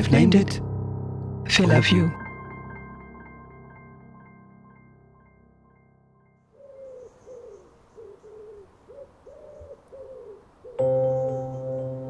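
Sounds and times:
soft music with held notes: 0:00.0 - 0:06.9, 0:10.6 - 0:12.0
pigeon cooing: 0:06.6 - 0:11.2.

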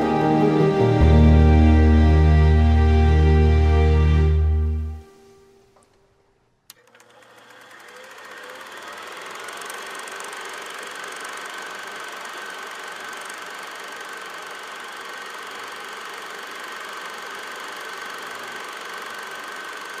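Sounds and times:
small machine whirring: 0:06.7 - 0:20.0.

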